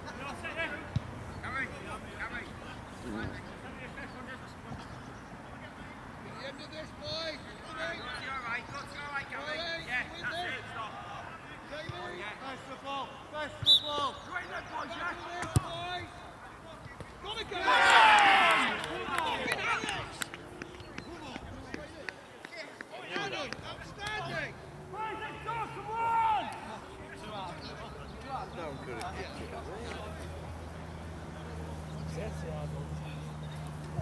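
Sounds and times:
players calling out: 0:06.3 - 0:34.0
players shouting: 0:17.0 - 0:21.4, 0:22.9 - 0:27.7.

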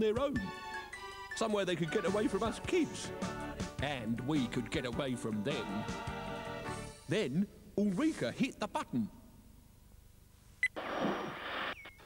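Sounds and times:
television static hiss: 0:09.9 - 0:12.0.

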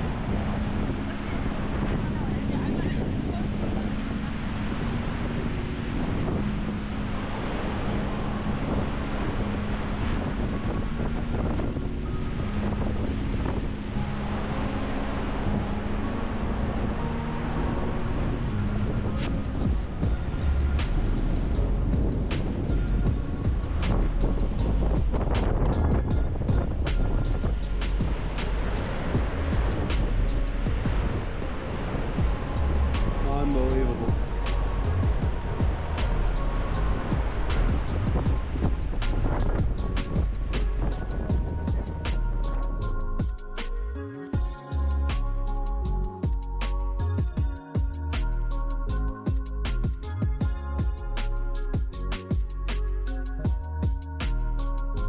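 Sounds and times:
background music: 0:00.0 - 0:55.0
wind on microphone: 0:00.0 - 0:55.0
fast clicking beat with thumps: 0:37.1 - 0:38.9, 0:49.3 - 0:51.0.

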